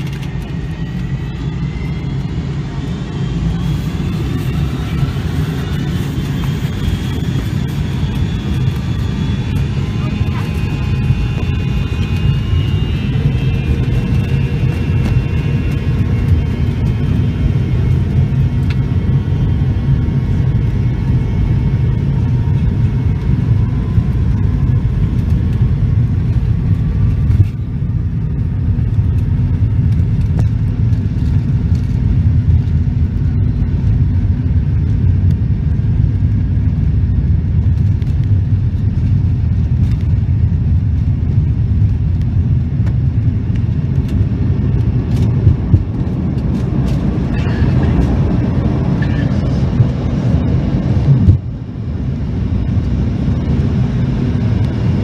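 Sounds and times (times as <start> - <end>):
aircraft cabin low rumble: 0.0 - 55.0.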